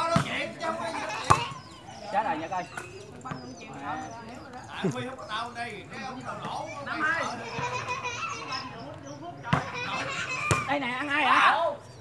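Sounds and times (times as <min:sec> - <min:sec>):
chatter and calls of people: 0:00.0 - 0:12.0.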